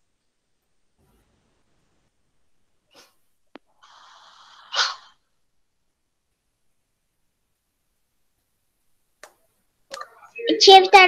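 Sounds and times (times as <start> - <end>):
breathy hiss: 2.9 - 5.3
burst of breath into microphone: 3.8 - 5.2.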